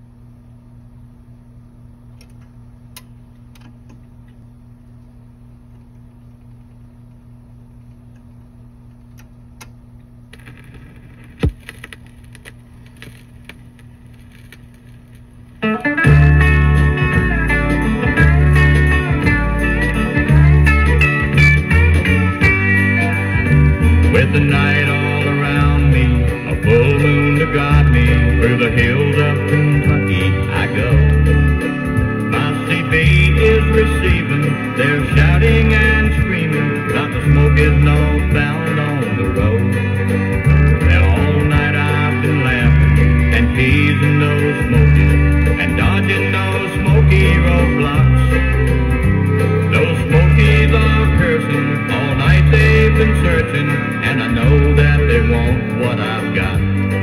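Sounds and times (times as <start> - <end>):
low steady hum: 0.0 - 53.6
record clicks: 2.1 - 4.4, 5.7 - 16.1
country band with guitar and bass: 15.6 - 57.0.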